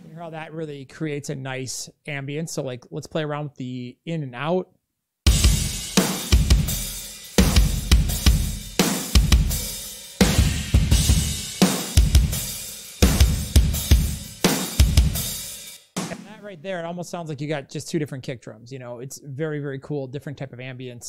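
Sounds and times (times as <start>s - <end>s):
rock drum groove: 0.0s - 0.2s, 5.3s - 16.6s.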